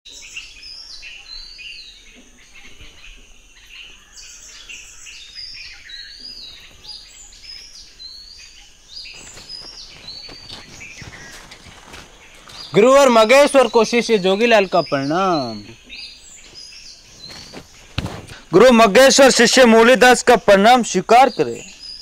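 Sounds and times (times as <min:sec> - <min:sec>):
birds chirping: 0:00.1 - 0:22.0
scuffing footsteps and taps: 0:09.1 - 0:13.3, 0:16.4 - 0:18.4.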